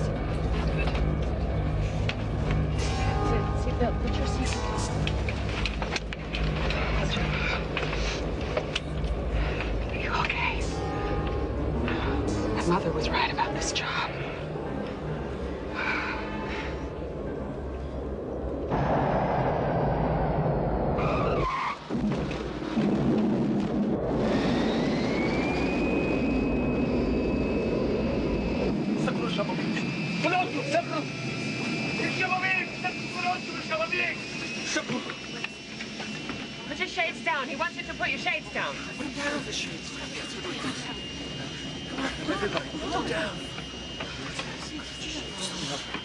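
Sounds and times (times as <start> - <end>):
passengers' voices and cries: 0.0 - 18.8, 25.5 - 46.0
high jet engine whine: 0.0 - 46.0.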